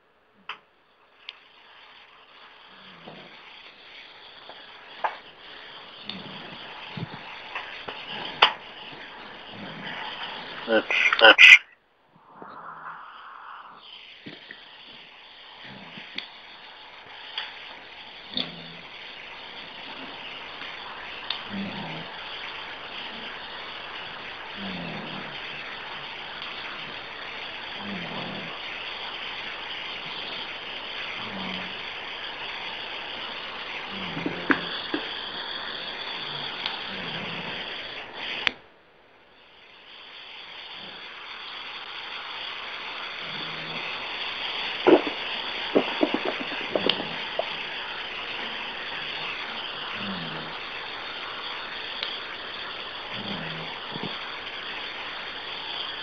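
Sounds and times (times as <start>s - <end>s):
telephone line hiss: 0.6s - 56.0s.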